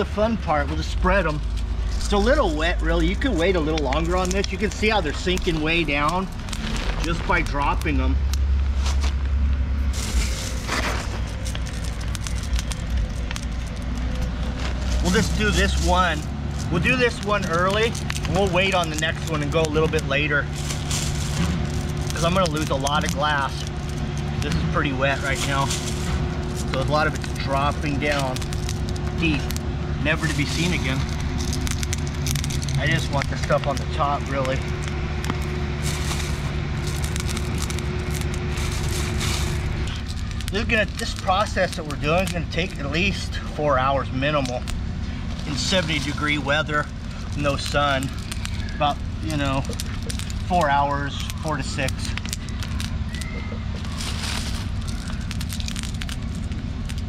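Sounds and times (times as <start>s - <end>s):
low engine drone: 0.0s - 57.0s
steady low rumble: 0.0s - 57.0s
plastic bag crinkling: 1.4s - 57.0s
glass beads clicking on concrete: 11.4s - 14.3s, 45.5s - 57.0s.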